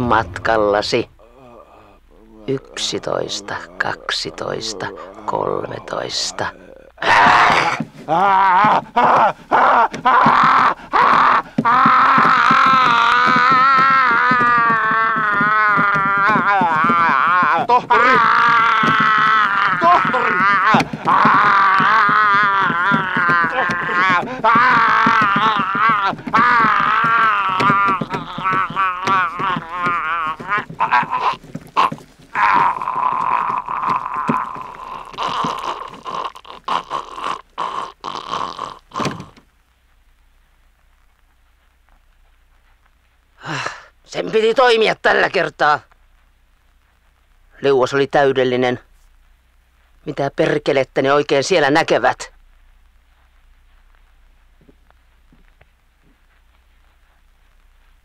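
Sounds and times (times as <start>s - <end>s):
wavering moaning wailing voice: 7.0s - 37.3s.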